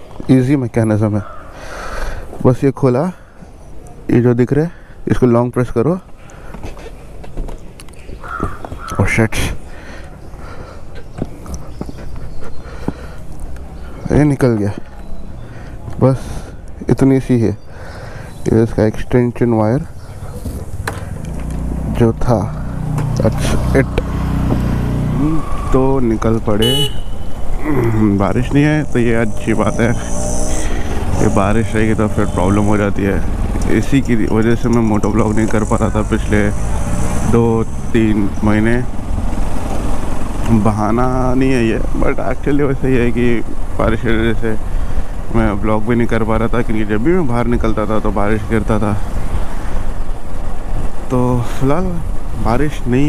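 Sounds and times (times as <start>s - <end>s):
motorcycle engine rumble: 19.4s - 53.0s
voice fragments: 25.1s - 27.0s, 27.6s - 36.6s
motorcycle engine idling: 26.6s - 36.5s.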